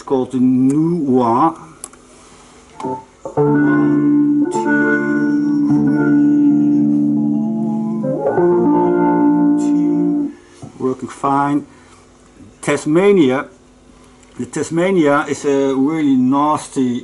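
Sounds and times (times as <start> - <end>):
vocoder guitar chords: 2.8 - 10.6.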